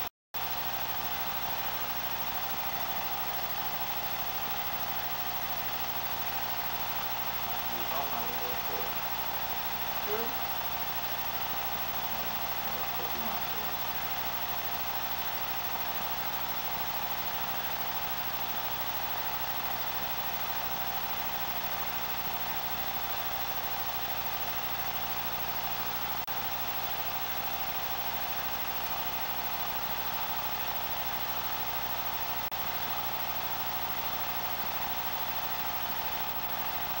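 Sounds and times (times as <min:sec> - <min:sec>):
steady hum with hiss: 0:07.0 - 0:10.4, 0:12.0 - 0:14.1.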